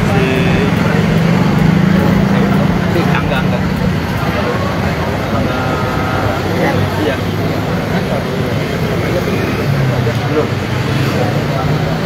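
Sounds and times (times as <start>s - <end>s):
people talking: 0.0s - 12.0s
vehicle engine hum: 0.0s - 12.0s.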